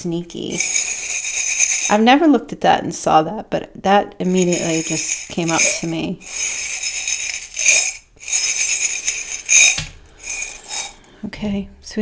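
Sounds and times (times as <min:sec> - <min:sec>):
metal charms rattling and jingling: 0:00.5 - 0:01.9, 0:04.3 - 0:11.0.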